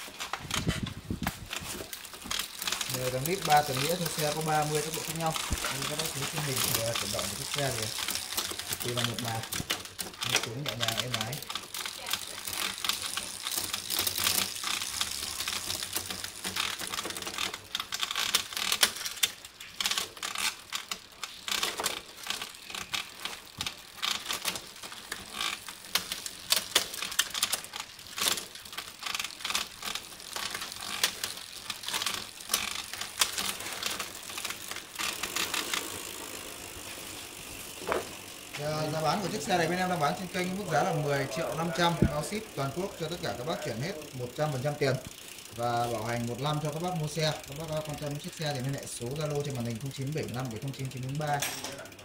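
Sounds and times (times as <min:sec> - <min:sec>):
bike chain clicking and rattling: 0:00.0 - 0:52.0
rear hub ticking: 0:01.9 - 0:17.0.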